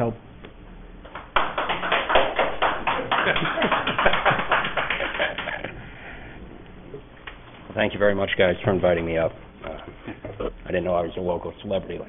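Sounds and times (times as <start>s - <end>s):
audience applauding: 1.1s - 5.8s.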